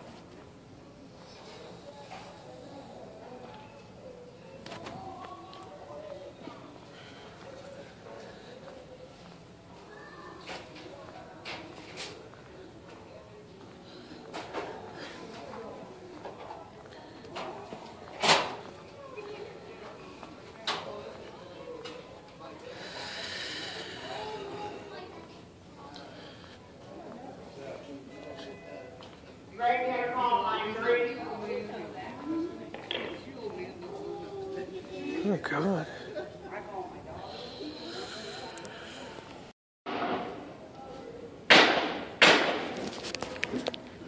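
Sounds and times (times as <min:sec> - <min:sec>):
distant indistinct voices: 0:00.0 - 0:39.5
loud sharp bangs: 0:41.5 - 0:42.8.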